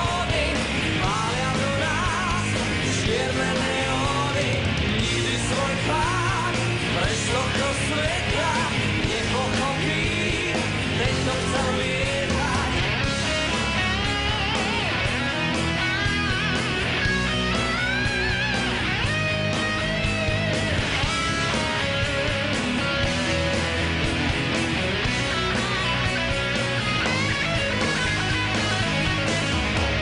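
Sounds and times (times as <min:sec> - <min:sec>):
hard rock band playing: 0:00.0 - 0:30.0
electric guitar solo: 0:12.8 - 0:30.0.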